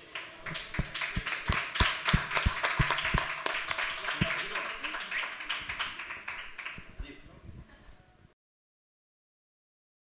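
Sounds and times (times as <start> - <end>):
audience applause: 0.0 - 6.9.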